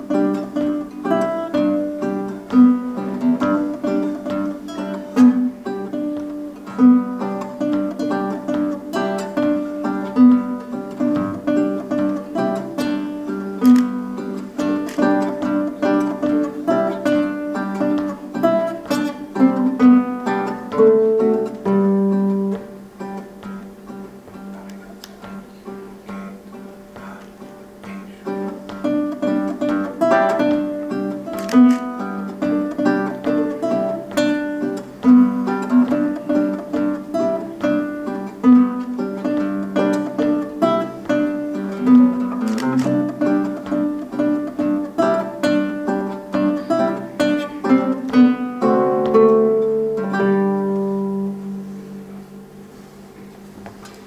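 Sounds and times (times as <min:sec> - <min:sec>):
classical guitar duet: 0:00.0 - 0:54.0.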